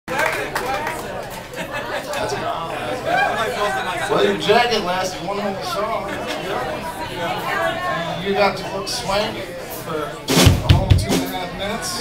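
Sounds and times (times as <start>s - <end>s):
people chattering: 0.1s - 12.0s.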